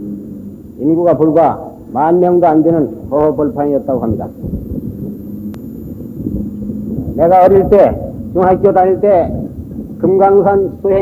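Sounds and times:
faint hum: 0:00.0 - 0:11.0
sharp click: 0:04.4 - 0:07.2.

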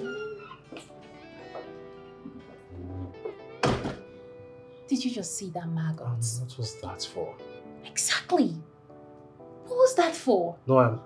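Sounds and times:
door slamming: 0:03.6 - 0:04.1.

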